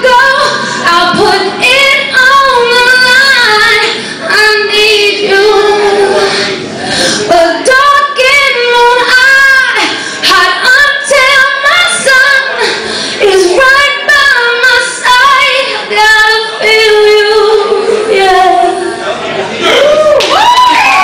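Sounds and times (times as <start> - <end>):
woman singing into microphone: 0.0 - 19.0.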